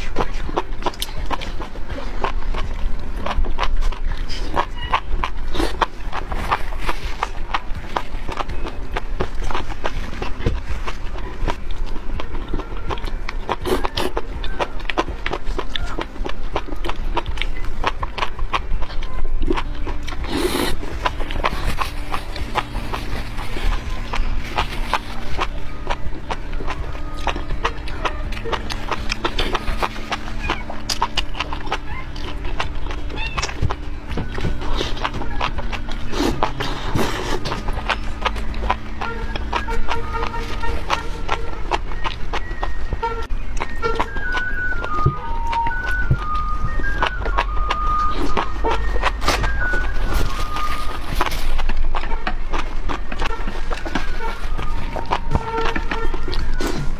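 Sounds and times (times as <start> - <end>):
background music: 0.0 - 56.9
chewing and slurping: 0.0 - 56.9.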